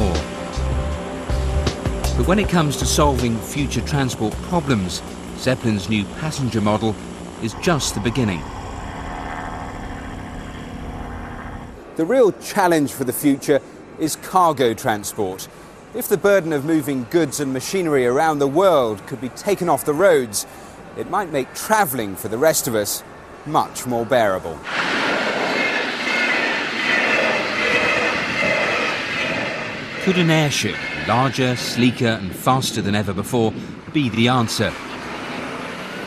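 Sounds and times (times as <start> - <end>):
airship engines humming: 0.0 - 12.0, 14.6 - 36.0
thin high whine: 0.0 - 12.1, 21.4 - 33.4
train wheels rushing on rail: 24.4 - 33.3.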